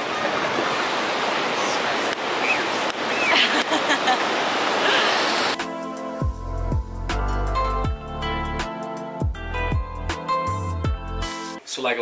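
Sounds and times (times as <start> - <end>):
surf washing over shallow water: 0.0 - 5.6
music: 5.6 - 11.7.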